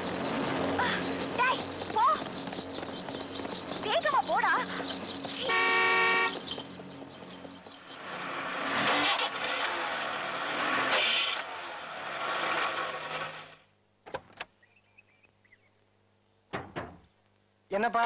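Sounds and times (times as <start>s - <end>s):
vehicle rushing past: 4.9s - 13.6s
car horn: 5.3s - 6.5s.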